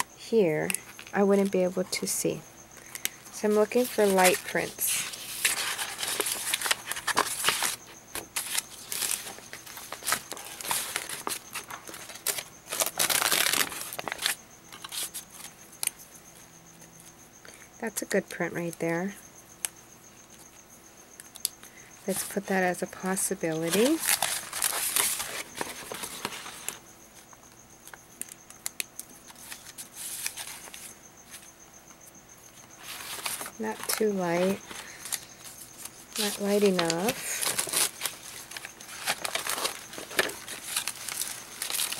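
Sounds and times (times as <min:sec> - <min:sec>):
paper sheets rustling: 0:03.4 - 0:15.5, 0:23.5 - 0:26.8, 0:29.3 - 0:31.5, 0:32.8 - 0:41.9.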